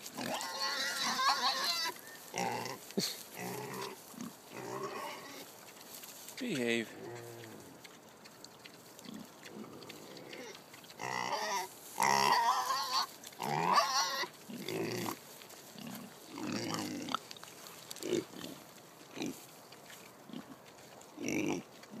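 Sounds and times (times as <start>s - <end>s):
pigs grunting: 0.0s - 5.5s, 6.4s - 17.3s, 18.0s - 22.0s
pigs squealing: 0.2s - 2.8s, 3.4s - 5.5s, 9.0s - 15.2s, 15.8s - 17.2s, 21.2s - 22.0s.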